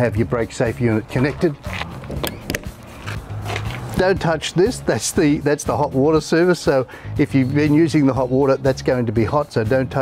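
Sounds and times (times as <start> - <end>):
metal latch clicks: 1.2 - 2.8.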